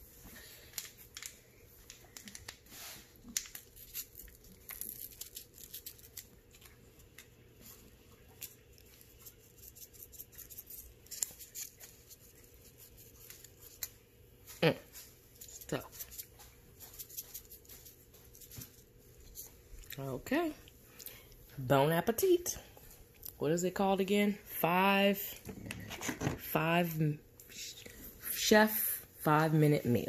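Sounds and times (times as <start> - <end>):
foil packet crinkling: 3.2 - 7.3.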